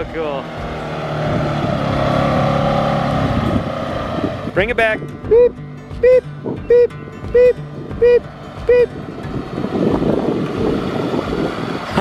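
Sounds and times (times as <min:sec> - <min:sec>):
tracked vehicle engine running: 0:00.0 - 0:12.0.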